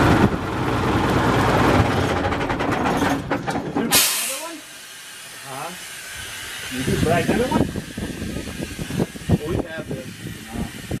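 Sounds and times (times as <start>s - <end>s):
steady hiss: 3.9s - 11.0s.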